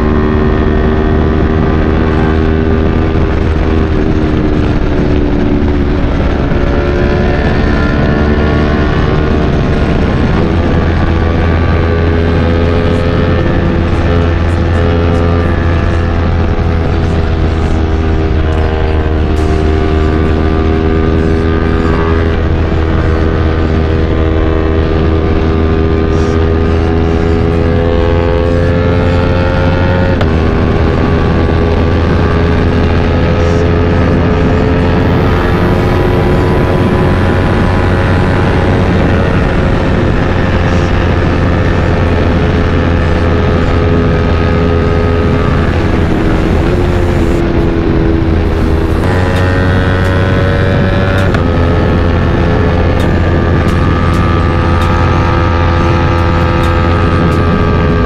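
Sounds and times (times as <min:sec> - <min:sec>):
motorcycle engine at highway speed: 0:00.0 - 0:58.0
wind rumble on microphone: 0:00.0 - 0:58.0.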